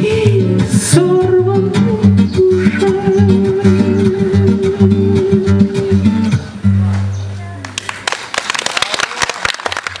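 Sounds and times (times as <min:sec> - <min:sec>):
audience applauding: 0:07.6 - 0:10.0.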